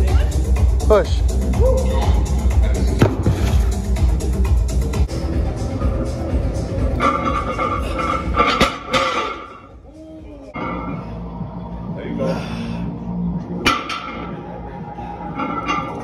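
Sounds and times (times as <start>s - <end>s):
background music with heavy bass: 0.0s - 12.2s, 12.8s - 16.0s.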